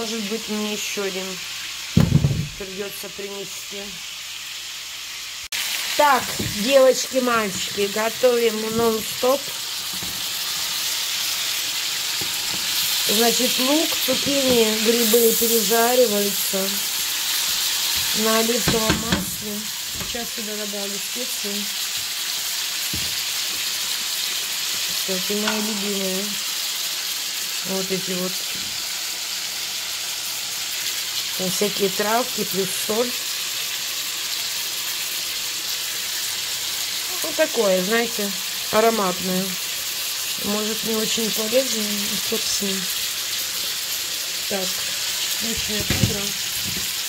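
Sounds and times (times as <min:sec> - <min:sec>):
vegetables sizzling in frying pan: 0:00.0 - 0:47.0.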